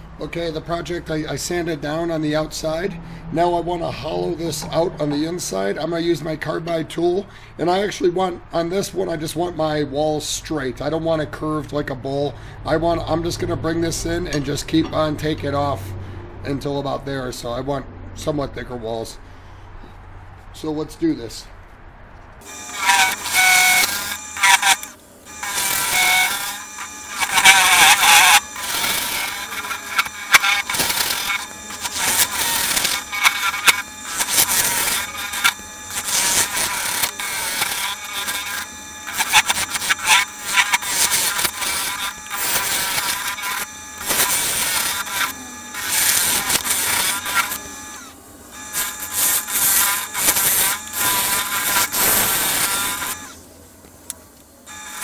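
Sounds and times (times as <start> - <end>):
lathe tool scraping wood: 22.4 - 53.4, 54.7 - 55.0.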